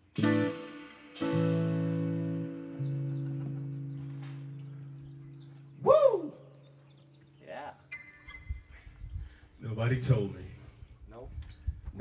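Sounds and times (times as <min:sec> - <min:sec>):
acoustic guitar: 0:00.0 - 0:05.9
bass guitar note ringing: 0:00.0 - 0:08.7.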